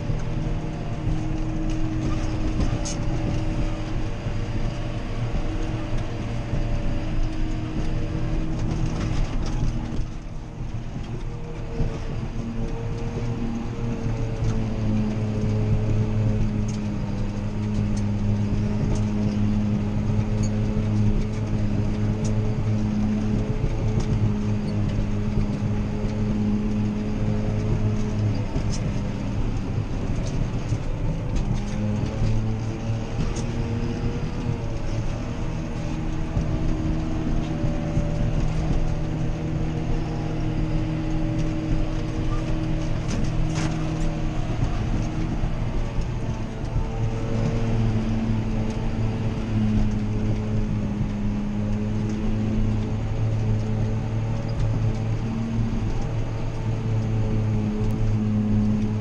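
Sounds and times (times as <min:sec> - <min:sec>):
forage harvester working: 0:00.0 - 0:59.0
tractor diesel engine running: 0:00.0 - 0:59.0.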